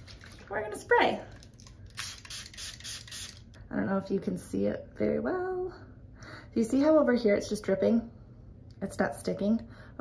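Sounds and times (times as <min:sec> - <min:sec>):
spray bottle squirts: 0:01.9 - 0:03.4.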